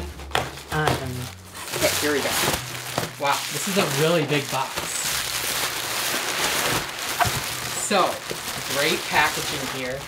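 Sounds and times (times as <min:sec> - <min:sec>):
bubble wrap crinkling: 0:00.0 - 0:10.0.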